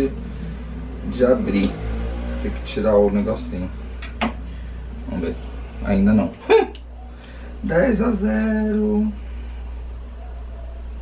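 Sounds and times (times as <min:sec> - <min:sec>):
faint room noise: 0:00.0 - 0:11.0
low hum: 0:00.0 - 0:11.0.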